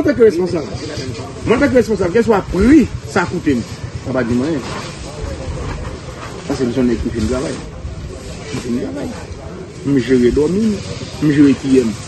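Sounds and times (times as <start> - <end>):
background hiss: 0.0 - 12.0
man talking: 0.0 - 12.0.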